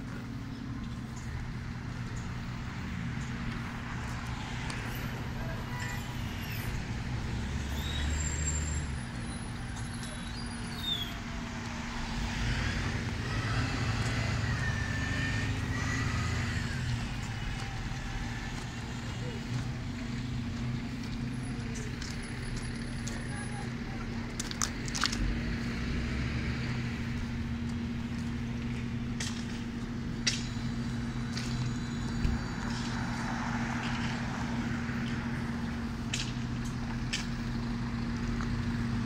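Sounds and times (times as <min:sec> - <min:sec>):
cars passing: 0:00.0 - 0:39.0
low traffic hum: 0:00.0 - 0:39.0.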